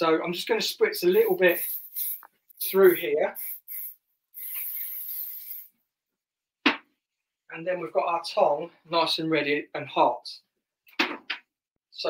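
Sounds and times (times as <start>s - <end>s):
aerosol spray hissing: 1.0s - 5.8s.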